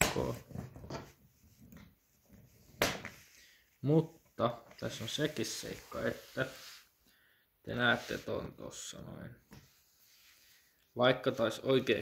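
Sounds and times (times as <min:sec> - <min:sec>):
faint handling sounds: 0:00.3 - 0:12.0.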